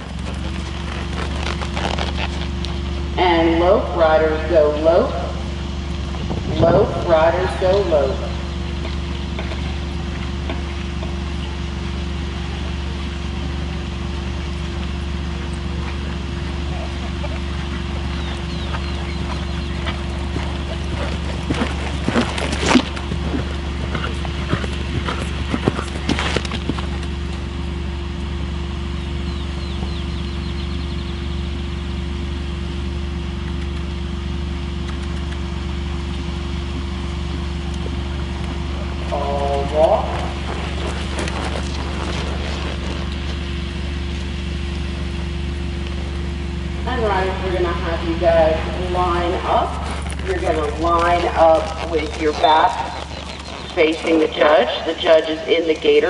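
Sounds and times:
horse hooves on dirt: 0.0s - 3.4s, 5.0s - 56.0s
steady low hum: 0.0s - 56.0s.

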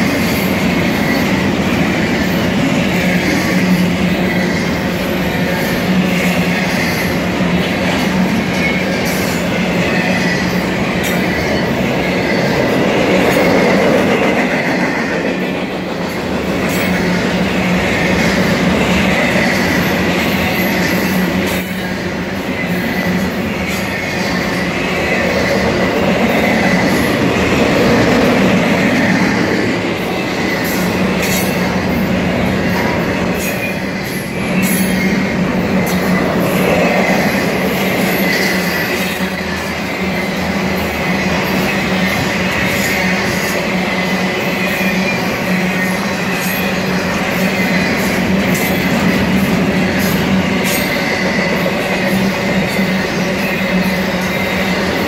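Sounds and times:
freight train wheels rumbling on rail: 0.0s - 55.0s.

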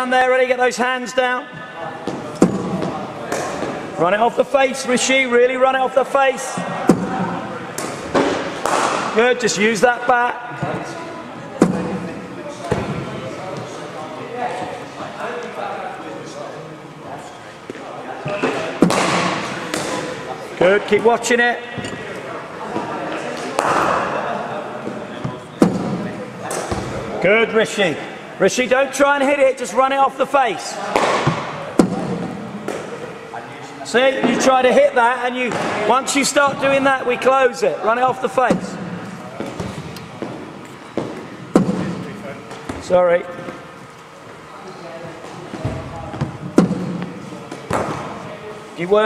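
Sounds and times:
cricket ball striking bat: 7.8s - 9.1s, 18.8s - 20.0s, 30.9s - 32.9s.

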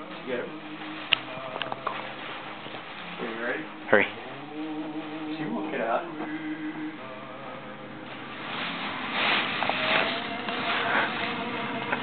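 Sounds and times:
plastic bag rustling: 0.0s - 3.8s, 8.0s - 12.0s.

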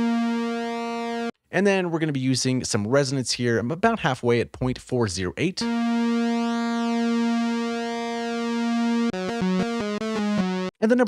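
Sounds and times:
synthesizer lead notes: 0.0s - 1.3s, 5.6s - 10.8s.

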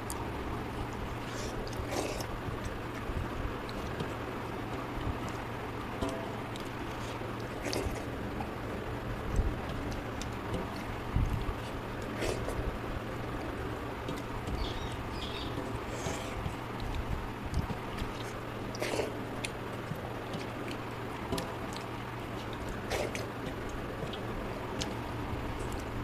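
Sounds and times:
fingers mixing rice on metal plate: 0.0s - 26.0s
low background hum: 0.0s - 26.0s
chewing smacks: 0.8s - 26.0s.

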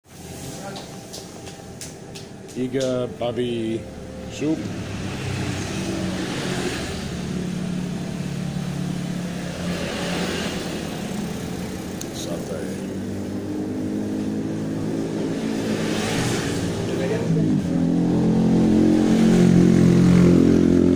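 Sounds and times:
passing traffic: 0.0s - 20.9s
vehicle engine running: 0.2s - 20.9s.

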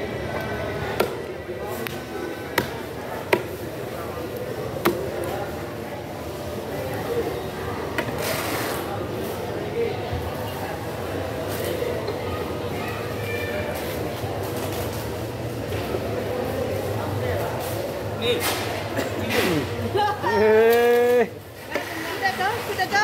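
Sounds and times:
hubbub of background voices: 0.0s - 23.0s.

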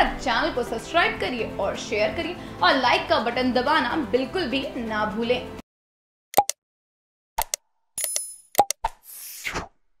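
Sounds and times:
short pops and clicks: 6.4s - 6.6s, 7.4s - 9.0s.

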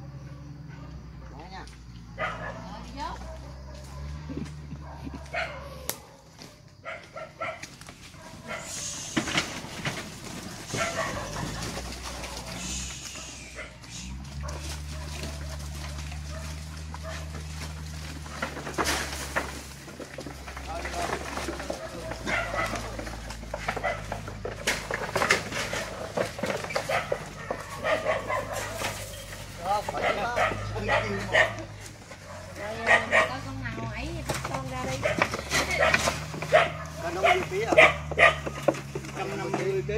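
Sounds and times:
dog barking and yipping: 2.1s - 9.1s, 10.4s - 17.8s, 21.4s - 24.4s, 25.3s - 33.8s, 34.8s - 38.8s.

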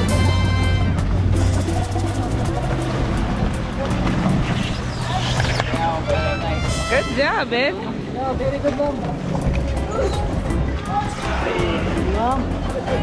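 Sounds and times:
boat engine running: 0.0s - 8.1s
water rushing: 0.0s - 13.0s
wind: 0.0s - 13.0s
voices: 1.3s - 13.0s.

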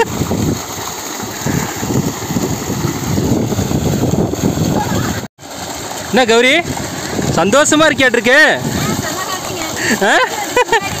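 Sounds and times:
water gushing and splashing: 0.0s - 11.0s.

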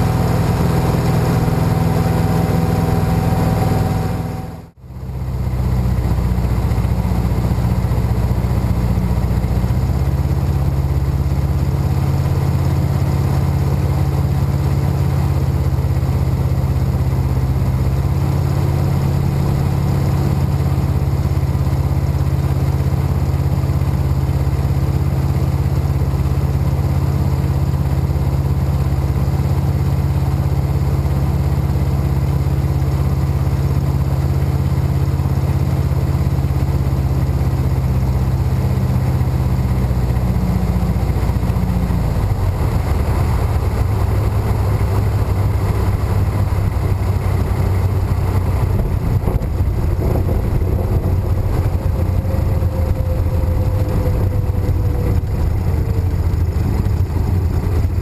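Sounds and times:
propeller engine drone: 0.0s - 58.0s.

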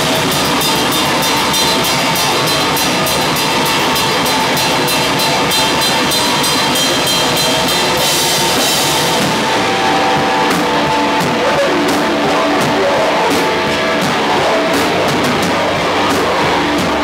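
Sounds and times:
fast cymbal and drum hits: 0.0s - 17.0s
hardcore band playing loud: 0.0s - 17.0s.

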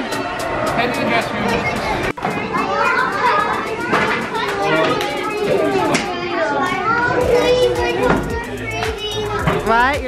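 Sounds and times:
background music with beat: 0.0s - 6.1s, 7.1s - 10.0s
children chattering and calling out: 0.0s - 10.0s.

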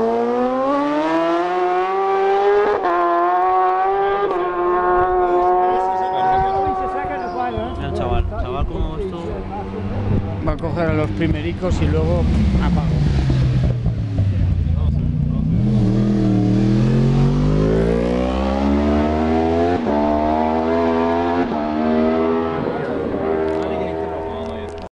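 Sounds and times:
motorcycle engine accelerating: 0.0s - 24.9s
racing motorcycle passing: 0.0s - 24.9s.

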